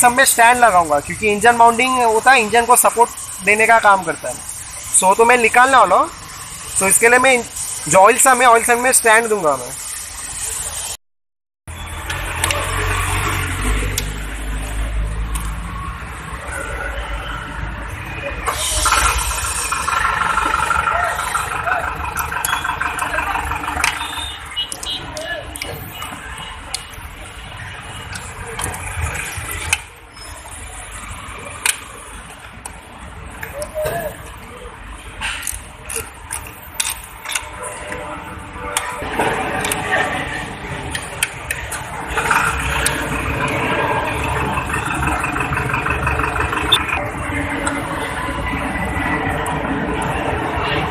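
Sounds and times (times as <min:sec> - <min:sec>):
metallic clicks from hand tools: 0:35.3 - 0:37.5.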